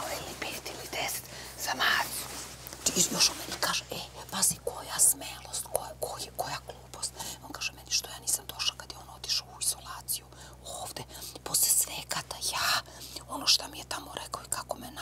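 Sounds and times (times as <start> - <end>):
women whispering: 0.0 - 2.2.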